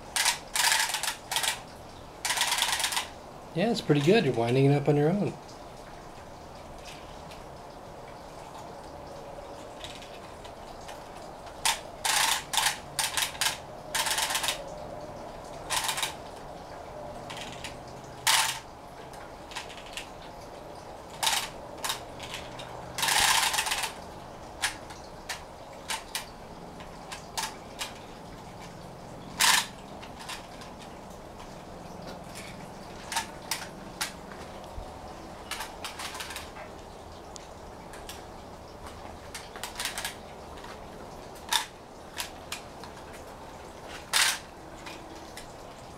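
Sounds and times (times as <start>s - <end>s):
wind-up toy ratchet clicking: 0.0s - 3.2s, 9.8s - 14.7s, 15.6s - 16.2s, 17.2s - 18.7s, 19.5s - 20.1s, 21.1s - 24.0s, 24.6s - 30.9s, 35.5s - 36.6s, 38.8s - 40.8s, 41.4s - 42.9s, 43.9s - 45.5s.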